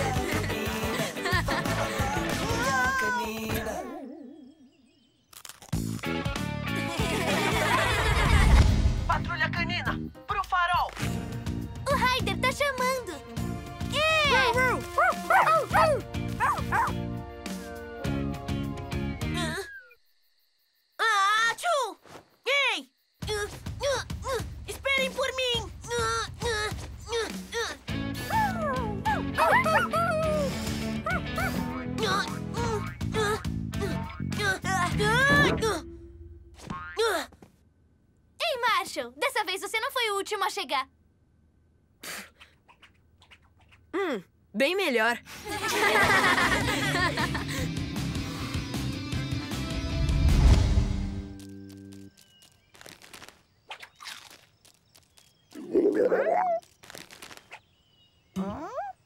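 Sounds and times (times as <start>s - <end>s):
upbeat background music: 0.0s - 3.7s
puppies barking and yipping: 14.8s - 17.0s, 55.9s - 56.7s
cartoon music cue: 34.9s - 36.4s.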